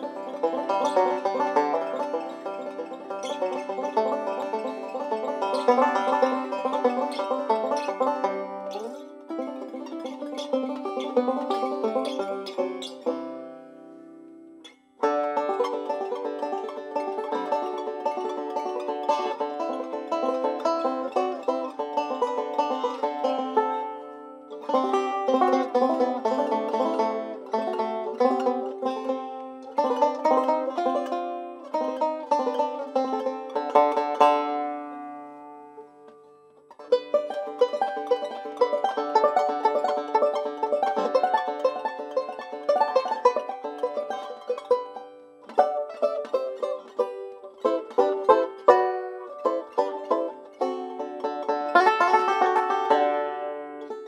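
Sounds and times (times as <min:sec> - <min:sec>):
banjo picking: 0:00.0 - 0:54.0.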